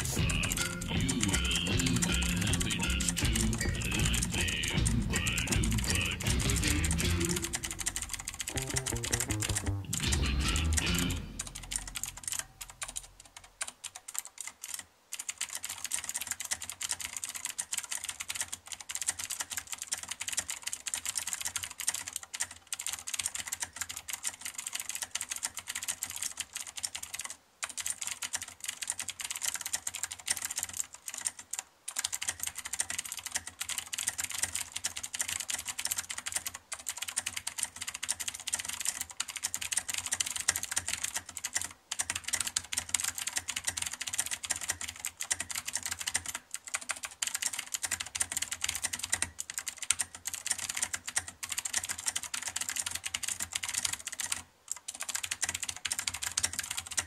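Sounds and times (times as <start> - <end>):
mechanical keyboard typing: 0.0 - 57.0.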